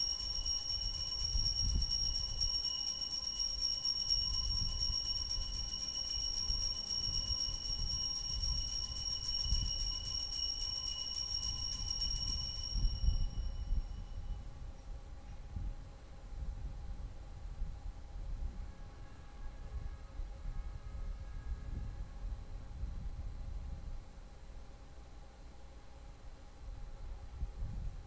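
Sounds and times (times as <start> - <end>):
altar bells jingling: 0.0 - 14.0.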